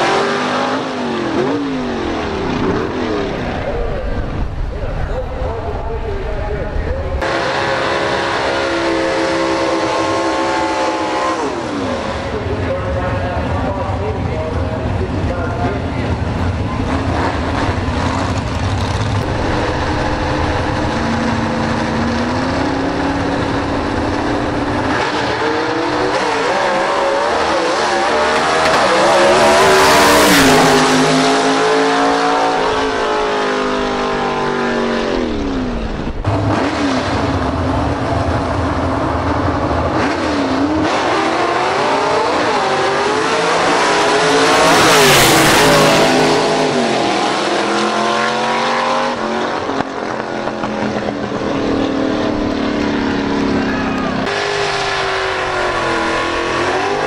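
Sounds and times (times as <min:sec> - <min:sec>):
race car engines at full throttle: 0:00.0 - 0:57.0.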